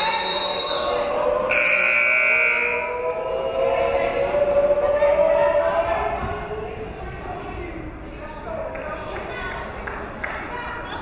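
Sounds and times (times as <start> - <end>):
scoreboard horn blast: 1.5 - 2.9.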